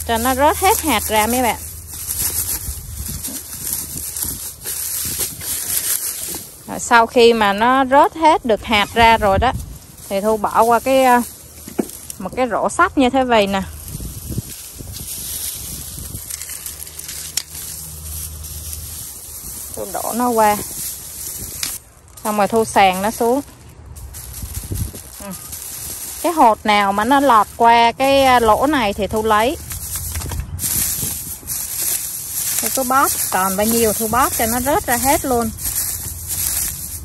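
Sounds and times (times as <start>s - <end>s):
low steady rumble: 0.0s - 37.0s
mesh bag rustling with dried stalks: 0.0s - 37.0s.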